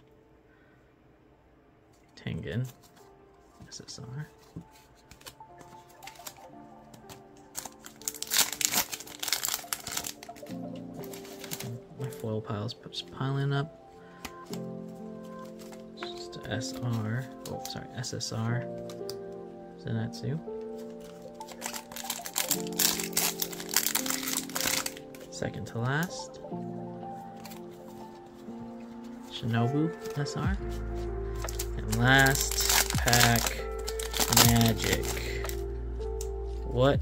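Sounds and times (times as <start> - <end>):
background music with held notes: 0.0 - 37.0
foil wrapper crinkling and tearing: 4.4 - 12.3, 20.7 - 25.3, 27.2 - 28.2, 30.0 - 36.3.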